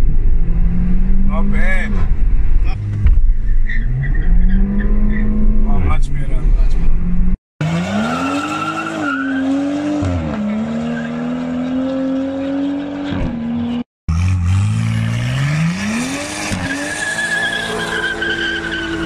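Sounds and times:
car engine revving: 0.1s - 19.0s.

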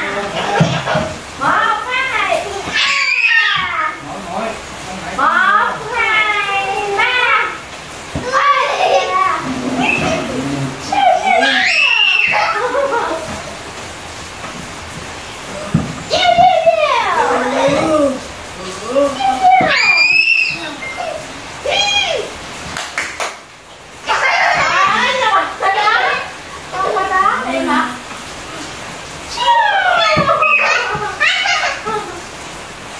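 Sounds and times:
children squealing and calling out: 0.0s - 4.0s, 5.7s - 13.6s, 15.4s - 22.5s, 24.0s - 27.8s, 28.4s - 32.4s
child squealing: 2.6s - 3.8s, 8.4s - 12.8s, 18.9s - 22.3s, 29.3s - 31.9s.

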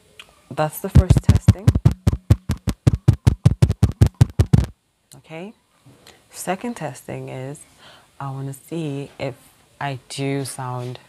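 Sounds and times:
fingertip tapping on microphone: 1.0s - 4.7s.

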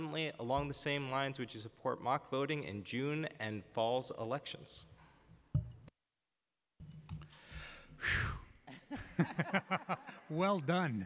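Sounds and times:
man breathing out into microphone: 7.3s - 8.6s.

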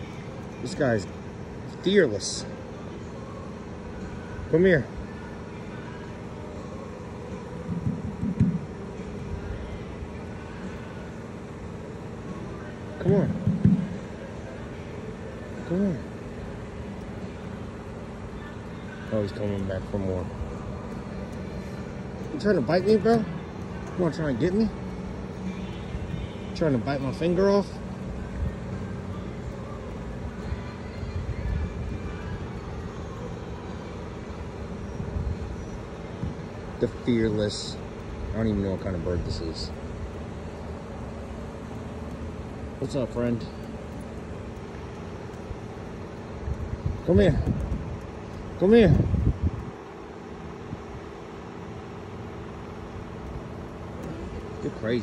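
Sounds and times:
low outdoor rumble: 0.0s - 55.0s
mechanical hum: 0.0s - 55.0s.

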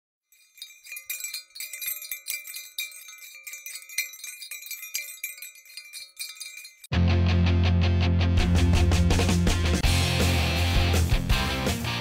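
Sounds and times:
tinkling chimes: 0.3s - 6.9s.

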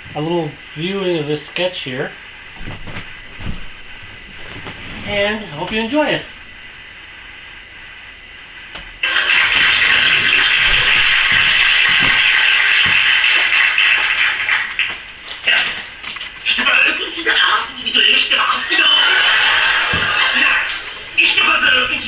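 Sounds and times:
low thumps: 2.4s - 6.7s
low thump: 2.6s - 3.9s
comedy sketch on television: 9.0s - 22.0s.

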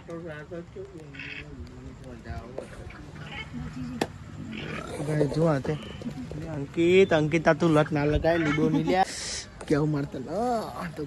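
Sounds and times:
people talking and murmuring: 0.0s - 11.0s.

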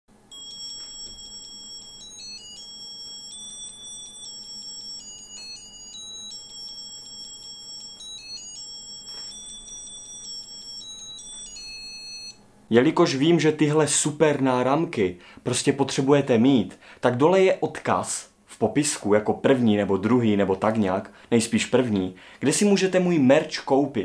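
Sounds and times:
high-pitched beeping melody: 0.3s - 12.4s.

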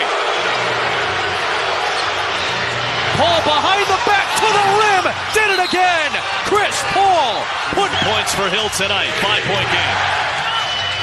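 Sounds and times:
arena crowd noise: 0.0s - 11.0s
sports commentator speaking: 3.1s - 10.0s.

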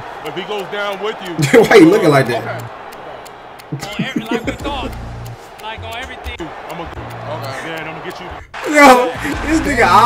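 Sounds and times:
men talking: 0.0s - 10.0s
background music with bass: 3.8s - 10.0s.

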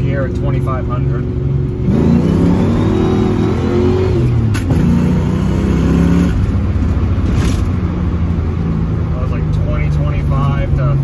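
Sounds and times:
car engine accelerating: 0.7s - 10.3s.

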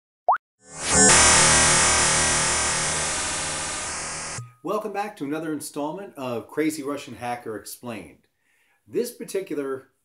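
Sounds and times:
rising bloop: 0.3s - 4.6s.

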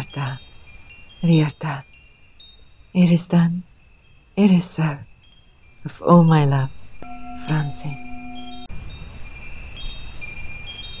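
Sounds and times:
chimes ringing: 3.7s - 11.0s.

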